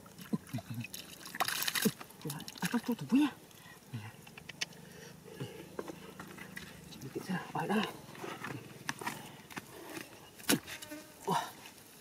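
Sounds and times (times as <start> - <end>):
hands squelching wet mud: 0.2 - 3.6.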